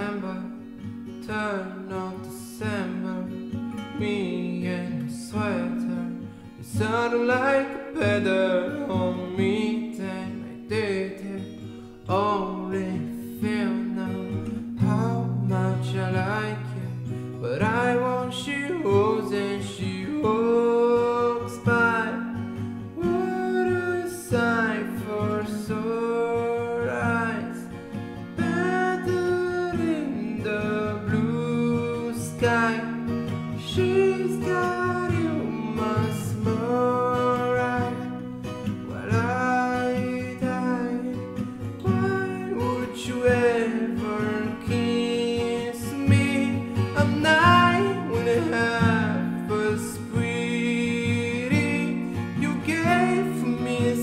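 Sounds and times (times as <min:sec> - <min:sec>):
acoustic guitar: 0:00.0 - 0:54.0
man singing: 0:00.0 - 0:54.0.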